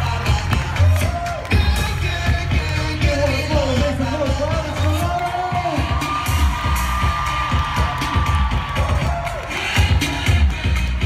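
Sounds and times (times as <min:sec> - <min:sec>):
audience cheering: 0:00.0 - 0:01.9, 0:05.1 - 0:10.5
loud pop music: 0:00.0 - 0:11.0.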